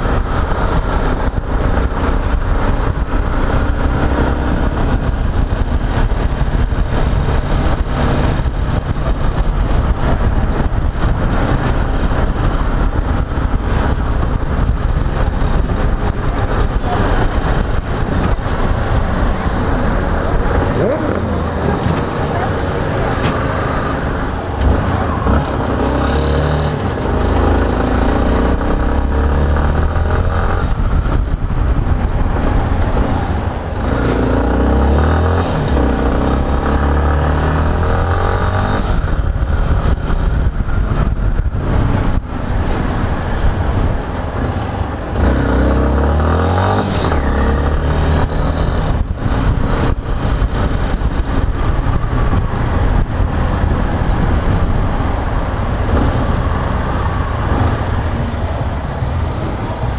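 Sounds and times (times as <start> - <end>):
motorcycle engine accelerating: 0.0 - 59.9.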